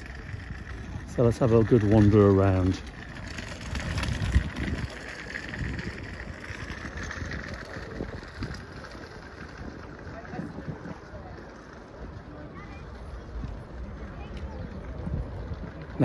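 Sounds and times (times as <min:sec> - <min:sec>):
faint crowd voices: 0:00.0 - 0:16.0
wind buffeting microphone: 0:00.0 - 0:16.0.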